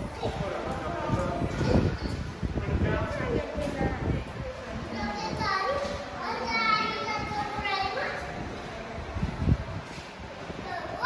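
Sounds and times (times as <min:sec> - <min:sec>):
children chattering in echoing hall: 0:00.0 - 0:11.0.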